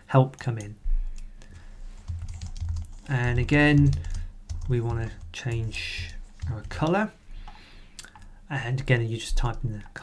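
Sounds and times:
typing on a computer keyboard: 0.5s - 8.3s.

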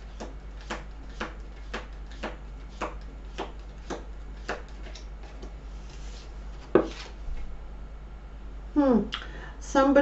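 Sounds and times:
cards being shuffled: 0.1s - 7.2s.

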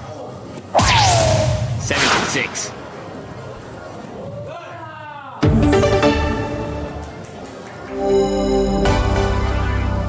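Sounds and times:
sharp hit: 0.8s - 3.1s.

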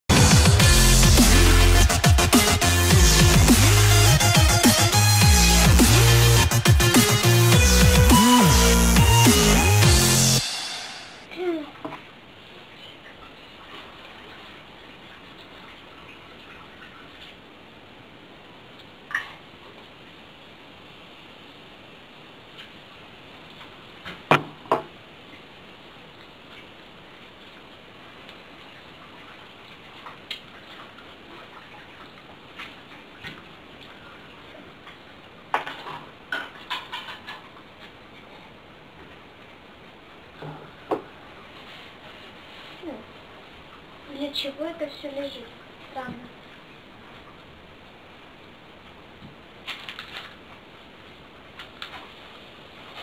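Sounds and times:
steady hiss: 8.2s - 11.3s
low room hiss: 9.7s - 53.0s.

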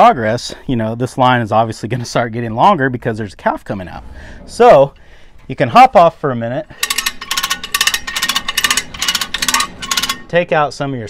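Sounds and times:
hand winch ratcheting clicks: 6.7s - 10.4s.

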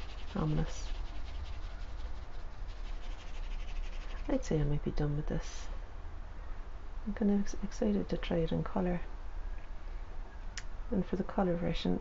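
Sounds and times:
pencil scratching on paper: 0.0s - 4.4s
low steady rumble: 0.0s - 12.0s.

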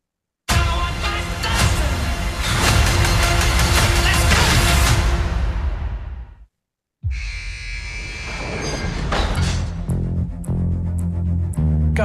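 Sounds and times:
high metallic squeal: 7.1s - 9.8s.

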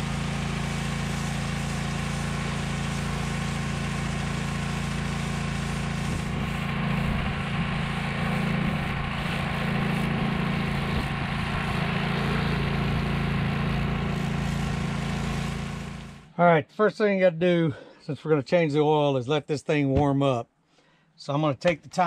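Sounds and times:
pressure washer engine running: 0.0s - 16.3s
water jet spraying on metal: 0.0s - 16.3s.

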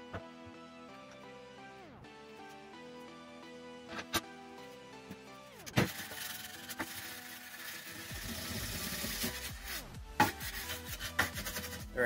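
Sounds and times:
background music: 0.0s - 12.0s
file rasping on wood: 10.2s - 11.9s.

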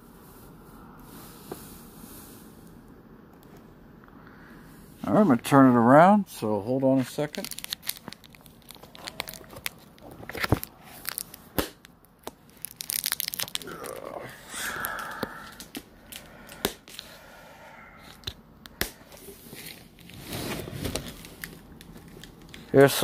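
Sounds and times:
plastic rustling and crinkling: 6.8s - 17.0s, 19.0s - 23.0s.

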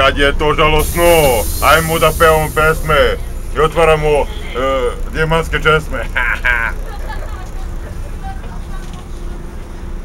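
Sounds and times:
bus engine rumble: 0.0s - 10.0s
faint passengers' voices: 6.7s - 10.0s.

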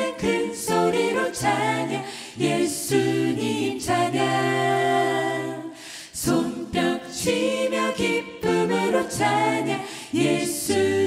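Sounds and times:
mixed choir singing in harmony: 0.0s - 11.0s.

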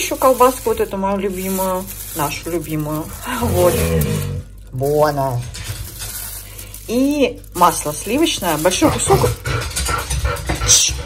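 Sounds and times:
plastic wrapping crinkling: 0.0s - 9.4s.

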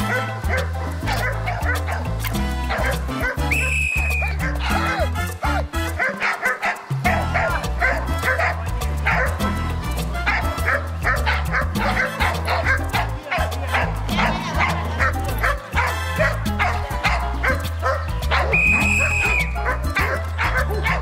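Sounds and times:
dog barking: 0.0s - 2.1s, 2.7s - 5.1s, 6.0s - 9.4s, 10.3s - 21.0s
background music with bass line: 0.0s - 21.0s.

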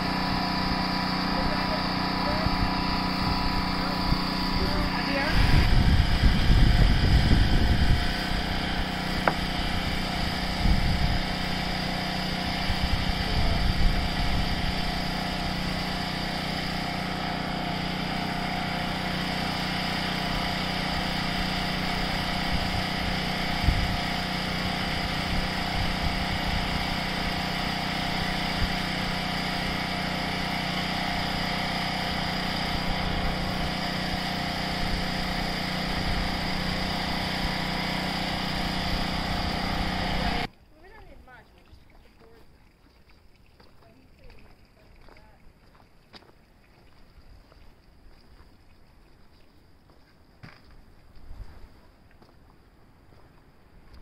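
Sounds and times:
small engine running: 0.0s - 41.2s.

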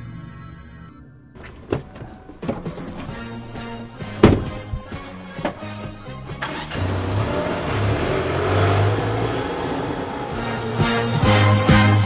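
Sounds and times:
background music: 0.0s - 12.0s
car driving off: 1.4s - 12.0s.

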